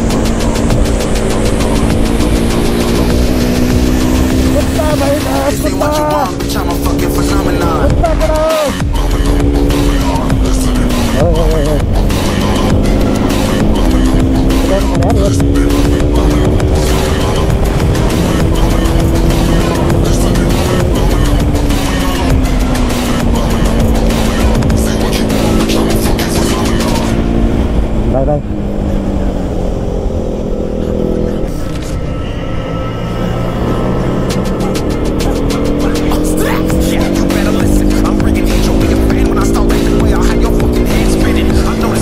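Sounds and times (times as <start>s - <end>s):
motorcycle engine revving: 0.0s - 42.0s.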